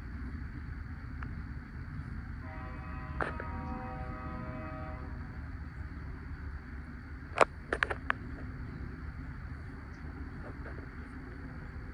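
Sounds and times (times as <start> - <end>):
distant locomotive horn: 2.4 - 5.4.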